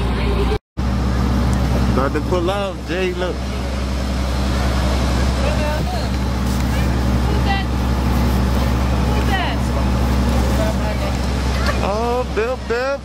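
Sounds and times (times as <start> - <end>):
engine humming: 0.0 - 13.0.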